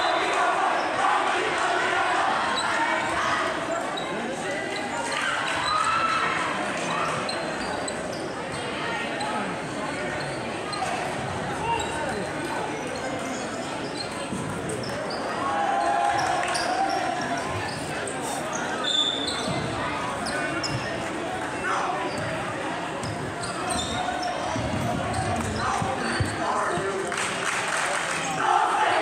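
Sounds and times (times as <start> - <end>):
crowd chattering: 0.0 - 29.0
sneaker squeaks: 3.7 - 26.9.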